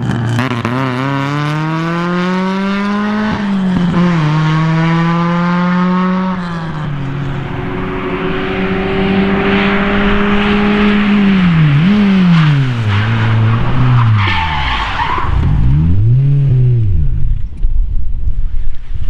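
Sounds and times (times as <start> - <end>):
car engine revving: 0.0 - 17.7.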